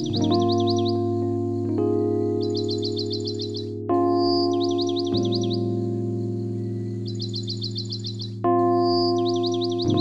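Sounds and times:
ambient music with sustained chords: 0.0 - 10.0
bird chirping and whistling: 2.5 - 5.6, 7.0 - 9.9.

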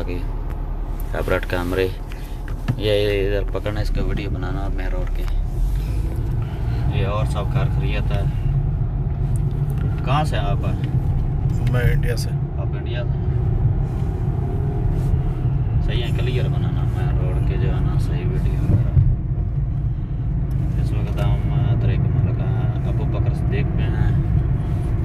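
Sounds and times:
car road rumble: 0.0 - 25.0
voices in car: 0.0 - 25.0.

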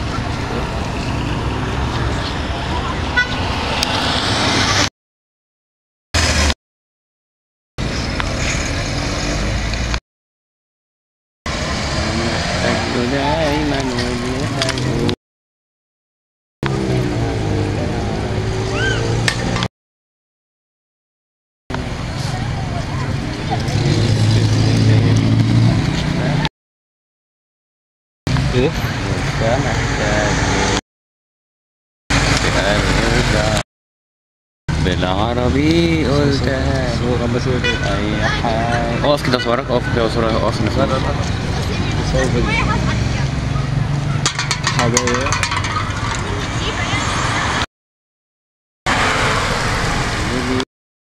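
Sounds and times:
car engine humming: 0.0 - 4.8, 11.5 - 15.2, 16.6 - 19.7, 34.7 - 47.6
faint voices: 12.0 - 15.2
people talking: 12.0 - 15.2, 16.7 - 18.9, 22.1 - 26.5, 28.4 - 30.8, 32.2 - 33.6, 34.8 - 43.7, 44.7 - 45.4, 46.2 - 47.5, 50.3 - 50.7.

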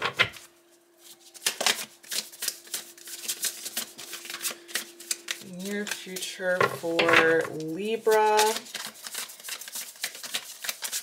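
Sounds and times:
cards being shuffled: 0.4 - 11.0.

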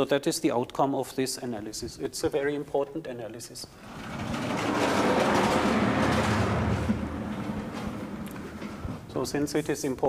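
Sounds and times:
blackboard panels rolling rumble: 3.8 - 9.4.

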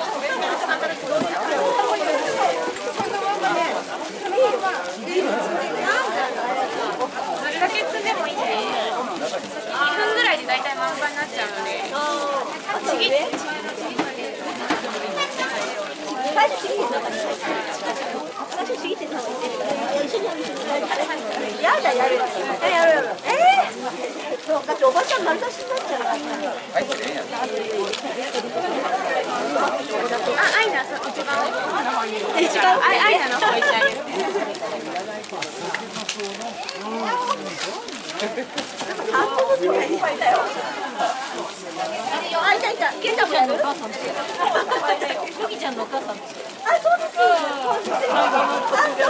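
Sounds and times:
babble of overlapping voices: 0.0 - 49.0
crowd chatter: 0.0 - 49.0.

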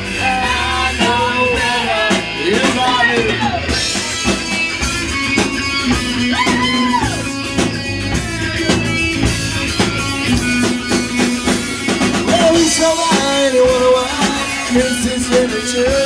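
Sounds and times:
person singing: 0.0 - 3.8, 12.2 - 16.0
bass guitar: 0.0 - 16.0
driving drum kit: 0.0 - 16.0
electric guitar: 0.0 - 16.0.

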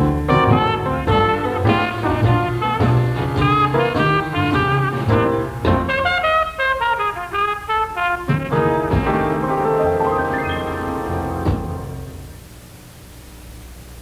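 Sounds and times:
jazz band playing: 0.0 - 12.4.

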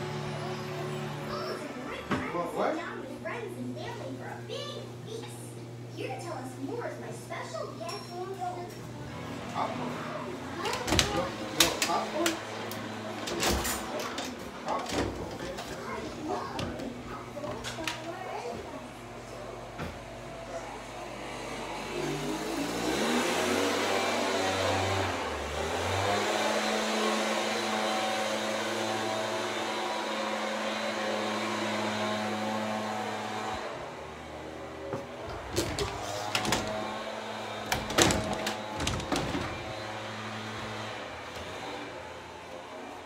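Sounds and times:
motor-like hum: 0.0 - 43.0.

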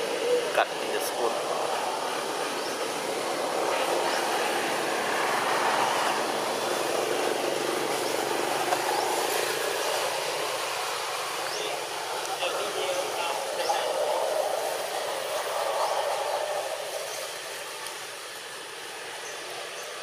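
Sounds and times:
steady outdoor hiss: 0.0 - 20.0.

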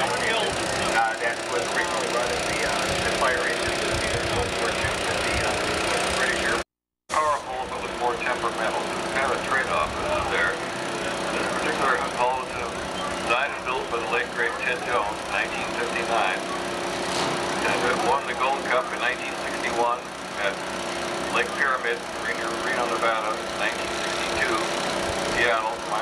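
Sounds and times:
engine drone: 0.0 - 26.0.

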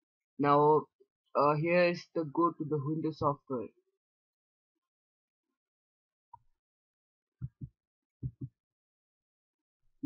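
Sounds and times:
soft low double knocks: 7.4 - 8.5.

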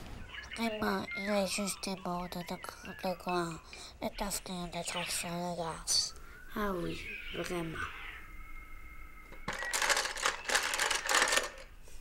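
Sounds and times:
pencils clattering in a box: 9.4 - 11.7.

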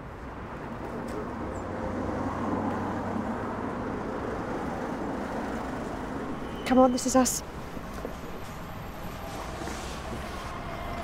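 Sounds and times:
bus engine hum: 0.0 - 11.0.

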